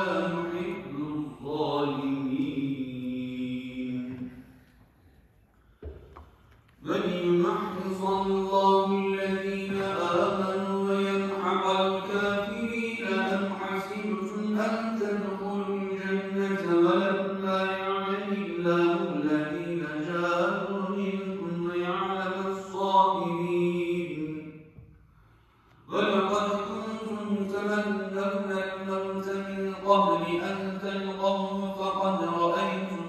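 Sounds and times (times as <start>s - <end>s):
man chanting melodically: 0.0s - 4.3s, 6.8s - 24.6s, 25.9s - 33.0s.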